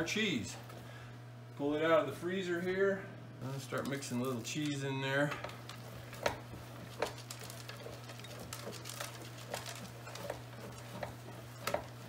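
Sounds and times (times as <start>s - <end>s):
steady low hum: 0.0s - 12.0s
meat mixer paddles knocking: 3.8s - 12.0s.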